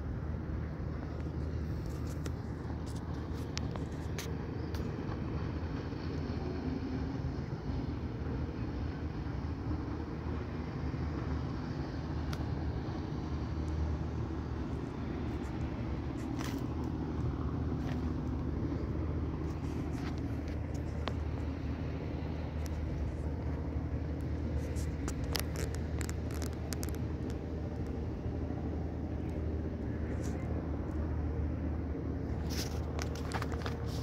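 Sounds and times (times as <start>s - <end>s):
low outdoor rumble: 0.0s - 34.0s.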